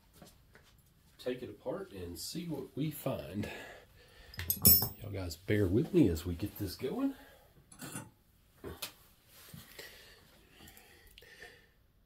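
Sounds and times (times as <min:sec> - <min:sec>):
hand tools clicking and knocking: 0:04.4 - 0:05.0.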